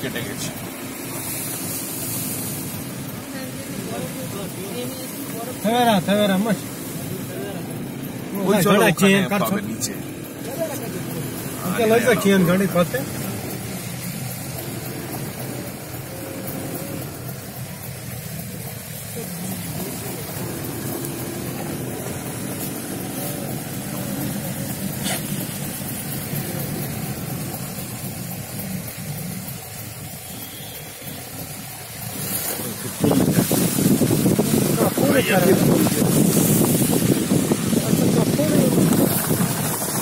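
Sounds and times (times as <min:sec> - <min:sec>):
car driving on snowy road: 0:00.0 - 0:40.0
sudden loud rush of noise: 0:31.9 - 0:40.0.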